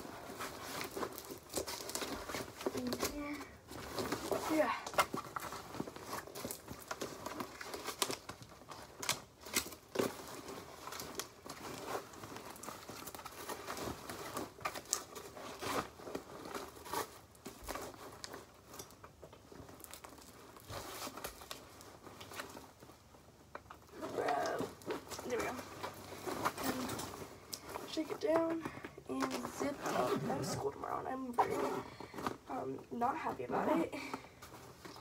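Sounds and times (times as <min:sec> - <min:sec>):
backpack fabric rustling: 0:23.9 - 0:32.5.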